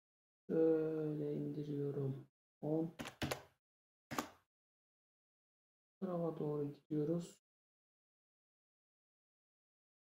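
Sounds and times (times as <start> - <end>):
computer keys clicking: 3.0 - 3.5, 4.1 - 4.4.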